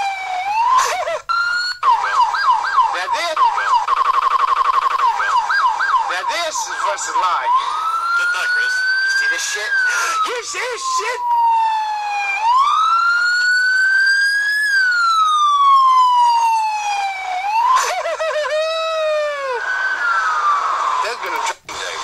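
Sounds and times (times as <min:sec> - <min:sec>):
emergency vehicle siren: 0:00.0 - 0:21.5.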